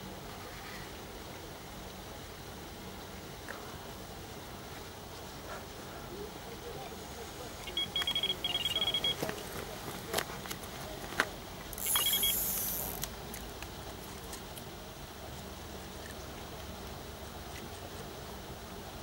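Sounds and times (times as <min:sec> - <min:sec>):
bite alarm beeping: 0:07.6 - 0:09.3, 0:11.8 - 0:12.9
sharp clicks: 0:11.7 - 0:13.7.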